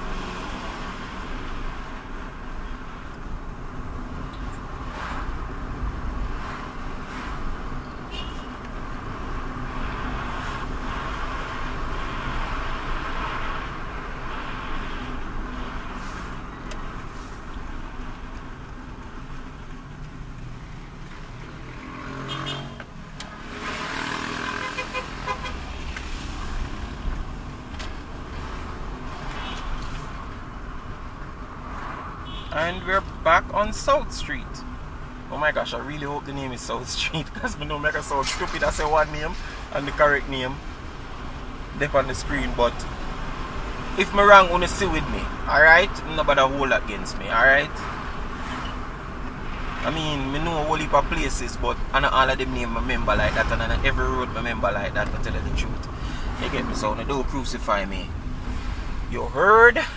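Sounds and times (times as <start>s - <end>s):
car engine and tyre noise: 0.0s - 59.9s
car horn toot: 8.1s - 8.6s, 22.2s - 22.9s, 24.5s - 25.7s, 32.2s - 32.7s.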